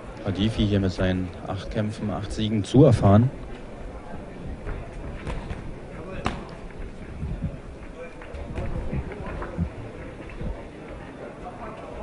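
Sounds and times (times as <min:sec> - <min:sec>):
crowd murmuring: 0:02.7 - 0:12.0.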